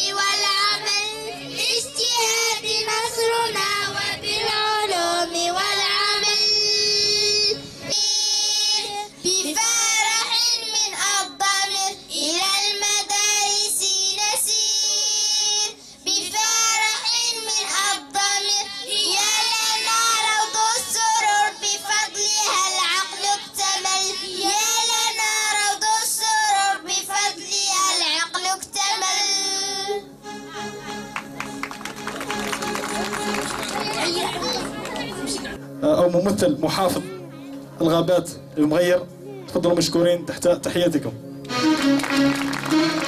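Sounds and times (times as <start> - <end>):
children singing in unison: 0.0 - 30.0.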